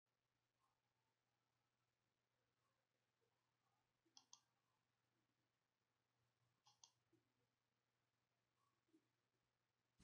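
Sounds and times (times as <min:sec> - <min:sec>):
computer mouse clicks: 0:04.1 - 0:04.6, 0:06.6 - 0:07.1.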